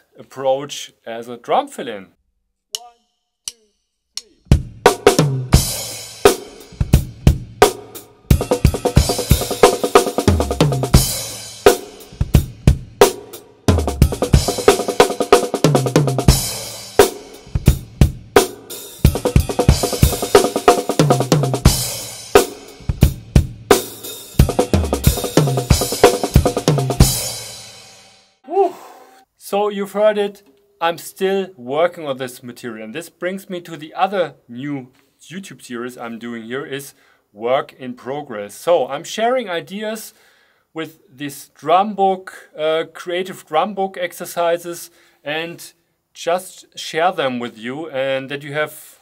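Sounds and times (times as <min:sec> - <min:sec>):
drum kit playing: 0:02.8 - 0:28.2.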